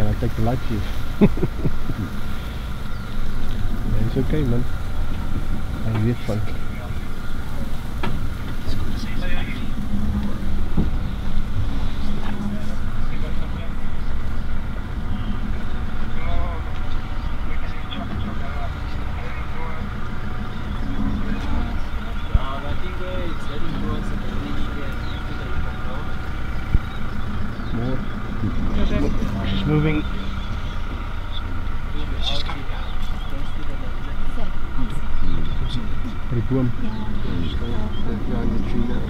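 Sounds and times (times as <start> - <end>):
quiet voices: 0.0 - 39.0
vehicle engine idling: 0.0 - 39.0.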